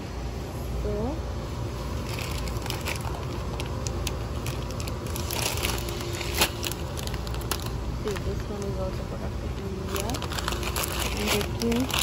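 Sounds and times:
plastic packets crinkling: 0:01.8 - 0:09.0, 0:09.6 - 0:12.0.

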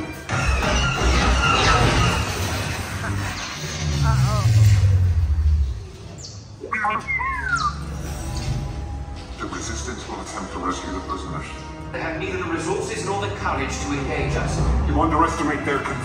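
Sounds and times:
ride soundtrack music: 0:05.6 - 0:16.0
warbling electronic chirps: 0:06.5 - 0:08.1.

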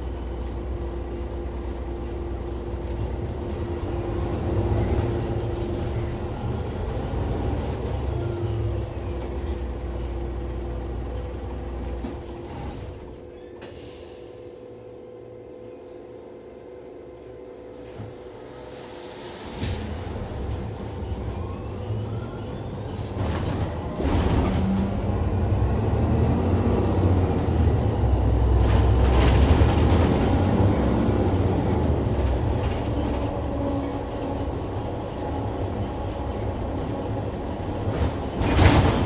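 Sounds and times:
bus rumbling: 0:00.0 - 0:39.0.

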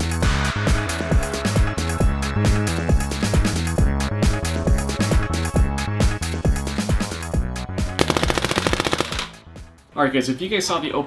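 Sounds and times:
paintball marker rapid firing: 0:08.0 - 0:09.4.

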